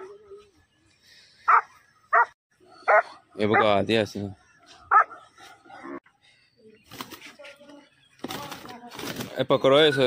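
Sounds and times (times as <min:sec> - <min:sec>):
dog barking: 0:01.5 - 0:03.7, 0:04.9 - 0:05.8.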